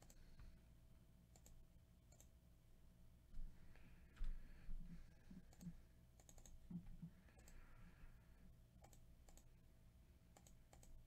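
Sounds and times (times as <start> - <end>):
mouse and keyboard clicking: 5.5 - 6.8, 8.8 - 9.5, 10.4 - 11.0.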